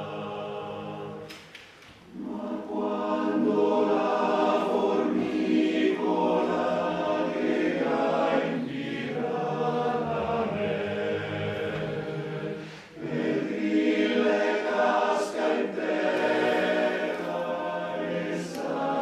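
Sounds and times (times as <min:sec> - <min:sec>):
male choir singing in harmony: 0:00.0 - 0:01.4, 0:02.1 - 0:19.0.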